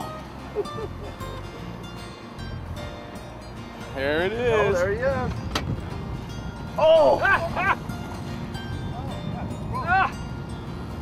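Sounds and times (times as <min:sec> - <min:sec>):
man exclaiming: 0:06.8 - 0:07.5, 0:09.8 - 0:10.2.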